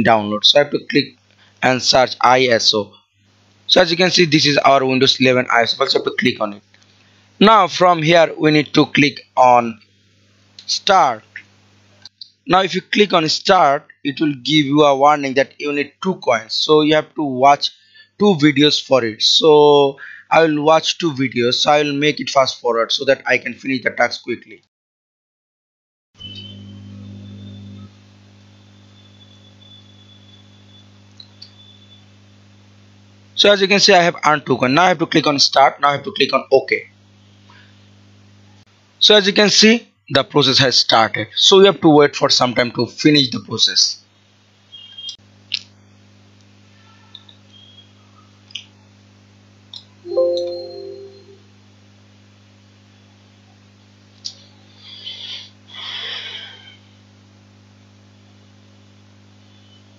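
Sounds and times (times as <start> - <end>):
faint high whine: 0.0 - 24.0, 26.2 - 44.0, 46.6 - 49.0, 49.8 - 51.8, 58.3 - 59.9
low electrical hum: 0.0 - 24.3, 26.2 - 59.9
short pitched tone: 50.1 - 51.5.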